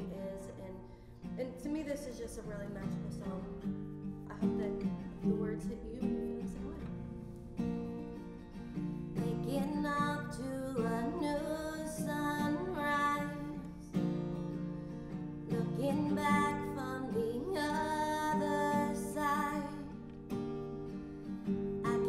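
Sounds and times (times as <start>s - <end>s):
woman singing: 0.0s - 7.2s, 9.1s - 14.1s, 15.4s - 20.2s, 21.8s - 22.0s
acoustic guitar strumming: 0.0s - 22.0s.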